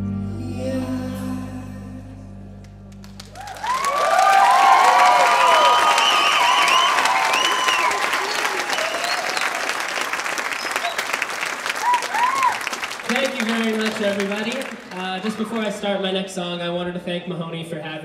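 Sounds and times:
audience applauding: 0:02.9 - 0:16.0
crowd cheering with whoops: 0:03.2 - 0:14.3.

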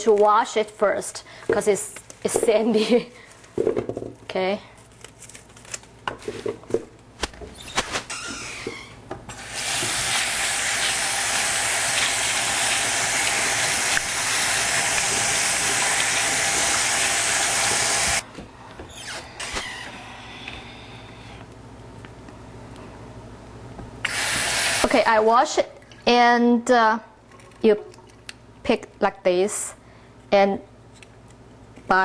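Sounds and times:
faucet running into sink: 0:09.6 - 0:18.2.

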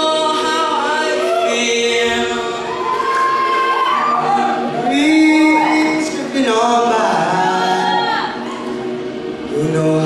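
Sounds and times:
men singing into microphones: 0:00.0 - 0:03.4, 0:04.5 - 0:08.7.

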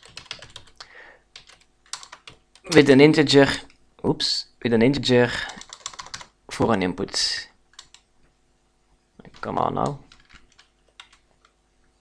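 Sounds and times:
keyboard keystrokes: 0:00.0 - 0:00.8, 0:05.6 - 0:06.3, 0:09.3 - 0:11.6.

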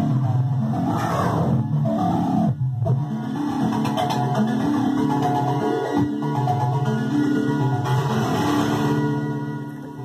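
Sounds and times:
buzzy synthesizer notes: 0:00.0 - 0:10.0.

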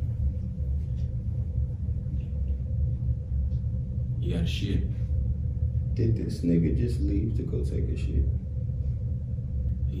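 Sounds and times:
faint constant hum: 0:00.0 - 0:10.0
low room rumble: 0:00.0 - 0:10.0.

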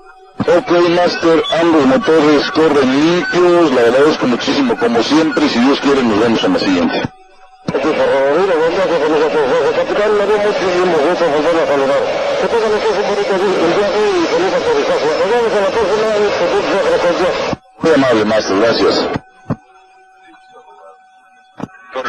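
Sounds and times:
muffled voices talking: 0:00.4 - 0:07.1, 0:07.7 - 0:19.6, 0:20.2 - 0:21.0, 0:21.6 - 0:22.0.

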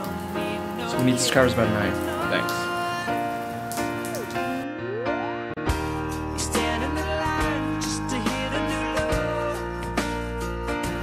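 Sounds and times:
steady rain falling: 0:00.0 - 0:04.6.

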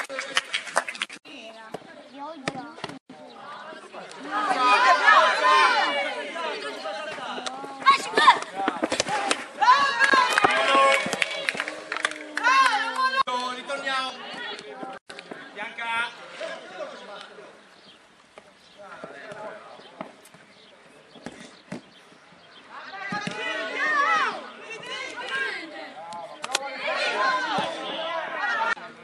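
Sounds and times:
people shouting: 0:04.2 - 0:15.0, 0:22.7 - 0:25.9, 0:26.5 - 0:28.8.

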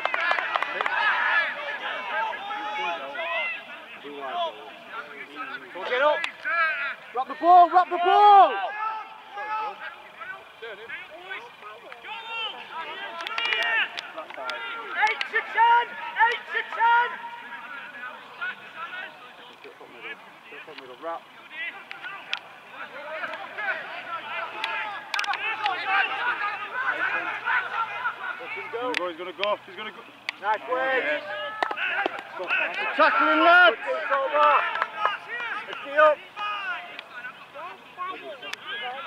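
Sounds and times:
men shouting: 0:00.0 - 0:39.0.

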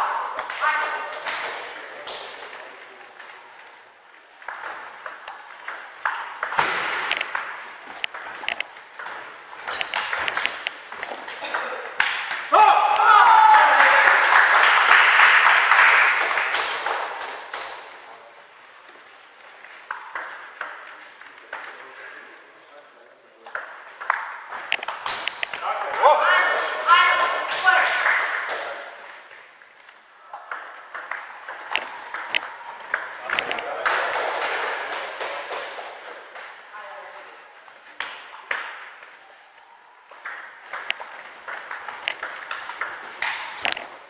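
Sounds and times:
table tennis ball clicking: 0:04.5 - 0:13.1, 0:30.4 - 0:33.6, 0:40.1 - 0:43.9
loud shout: 0:12.5 - 0:14.6, 0:26.0 - 0:28.5.

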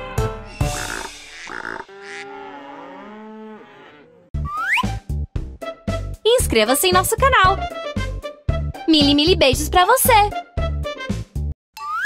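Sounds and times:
cows mooing: 0:00.7 - 0:04.3.

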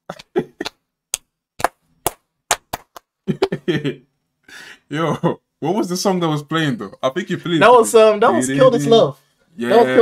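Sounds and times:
laughter: 0:00.1 - 0:00.7, 0:03.3 - 0:04.1
hand claps: 0:00.1 - 0:03.2.

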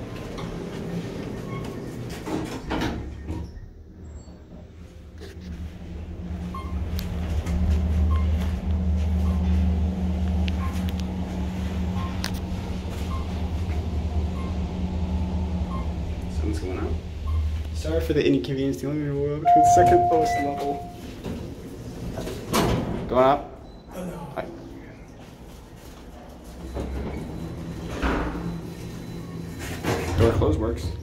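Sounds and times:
elevator low rumble: 0:00.0 - 0:31.0.

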